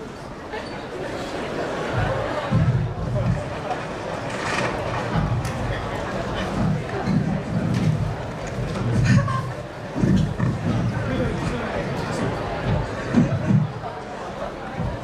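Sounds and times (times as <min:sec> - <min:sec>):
indistinct voices in a large hall: 0:00.0 - 0:15.0.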